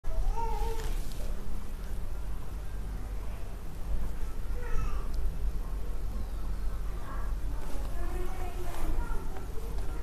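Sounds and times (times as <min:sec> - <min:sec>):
steady low hum: 0:00.1 - 0:10.0.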